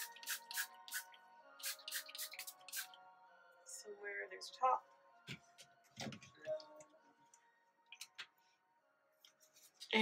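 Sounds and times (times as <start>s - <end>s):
spray bottle spritzes: 0.0s - 3.0s
faint background music: 0.0s - 10.0s.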